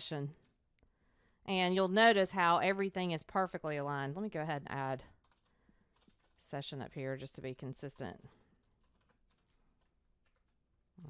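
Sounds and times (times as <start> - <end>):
keyboard typing: 5.2 - 6.5, 8.2 - 10.7.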